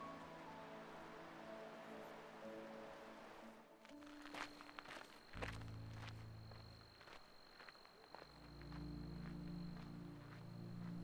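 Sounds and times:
footsteps crunching on gravel: 3.8s - 11.0s
low steady hum: 4.5s - 11.0s.

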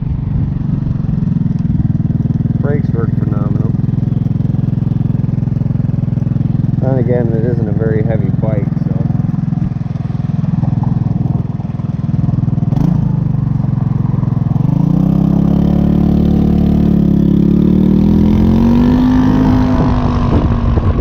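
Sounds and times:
scooter engine idling and revving: 0.0s - 21.0s.

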